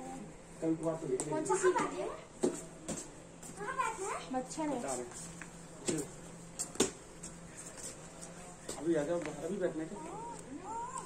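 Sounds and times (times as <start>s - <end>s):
children talking and calling out: 3.6s - 4.4s, 10.0s - 11.0s.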